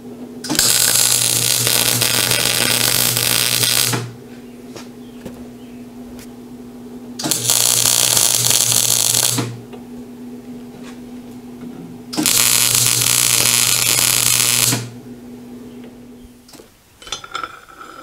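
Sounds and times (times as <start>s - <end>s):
steady electrical hum: 0.0s - 18.0s
welding arc crackling on steel: 0.5s - 4.2s, 7.2s - 9.6s, 12.2s - 15.0s.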